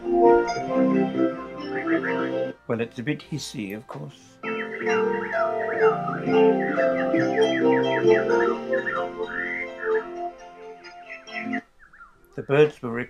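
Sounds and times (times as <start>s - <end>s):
bird chirps: 1.1s - 2.5s, 4.3s - 13.0s
recording hiss: 2.2s - 13.0s.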